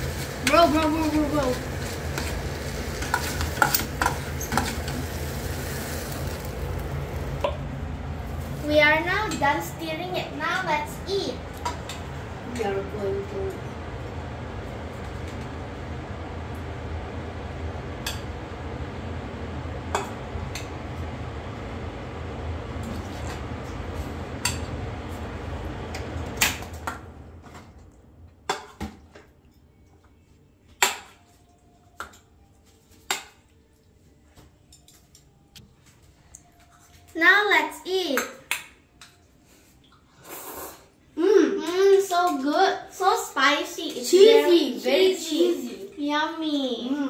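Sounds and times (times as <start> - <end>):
steady low hum: 0.0 - 30.7.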